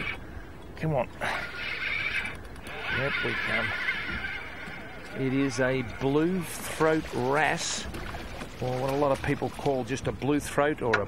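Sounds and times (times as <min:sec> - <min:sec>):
fishing reel whirring: 0:01.4 - 0:06.2.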